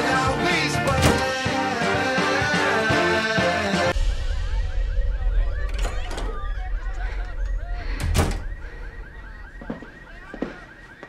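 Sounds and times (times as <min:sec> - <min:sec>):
low rumble: 0:03.9 - 0:09.6.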